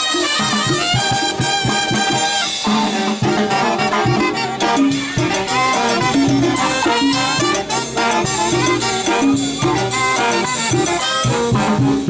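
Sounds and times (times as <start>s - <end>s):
brass band playing dance music: 0.0s - 12.0s
hand drums: 0.0s - 12.0s.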